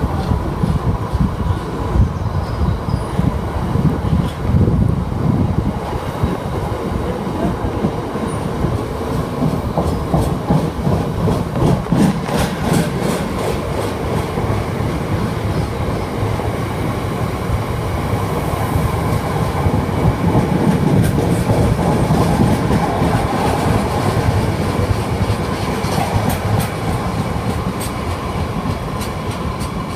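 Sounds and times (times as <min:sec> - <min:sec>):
train wheels rumbling on rail: 0:00.0 - 0:29.9
wheels clicking over rail joints: 0:20.0 - 0:29.9.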